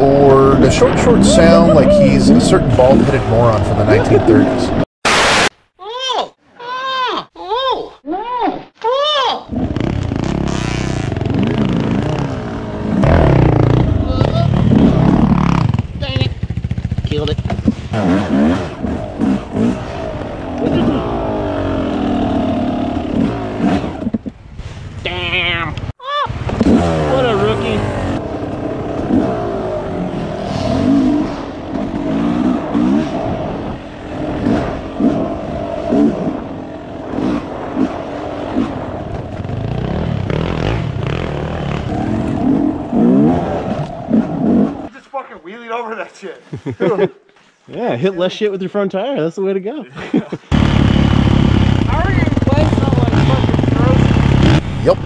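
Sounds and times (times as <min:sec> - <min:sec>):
dirt bike engine revving: 0:09.5 - 0:24.2, 0:26.3 - 0:44.9, 0:50.5 - 0:55.0.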